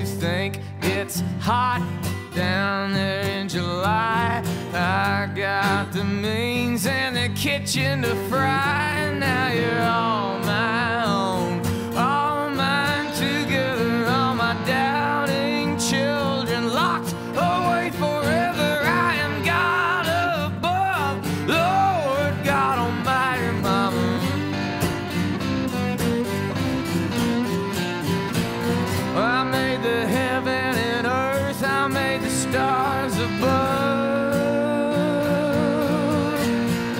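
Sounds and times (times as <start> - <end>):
acoustic guitar accompaniment: 0.0 - 36.9.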